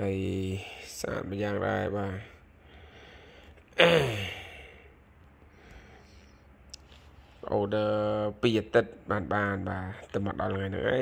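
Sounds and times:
man sighing: 0:03.8 - 0:04.9.

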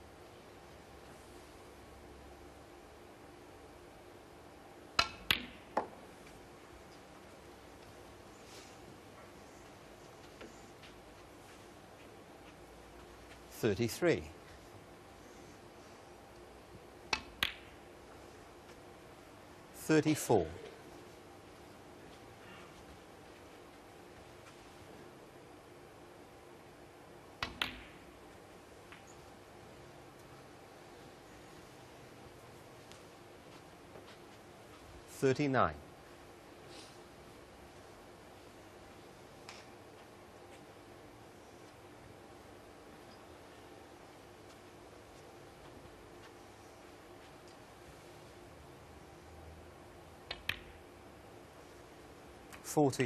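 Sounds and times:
snooker balls clicking: 0:05.0 - 0:07.0, 0:17.1 - 0:17.8, 0:27.4 - 0:28.2, 0:50.2 - 0:50.8
cue tip striking ball: 0:27.4 - 0:28.0
ball clicking into ball: 0:50.3 - 0:50.8
cue tip clicking cue ball: 0:50.3 - 0:50.8.

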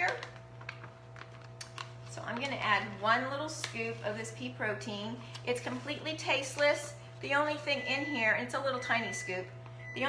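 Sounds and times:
plastic pouch crinkling: 0:00.0 - 0:03.0.

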